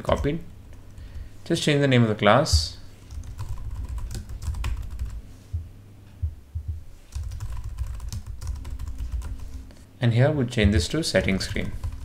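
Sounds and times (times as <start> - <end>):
typing on computer keyboard: 3.1 - 5.2, 7.1 - 9.5, 11.2 - 12.0.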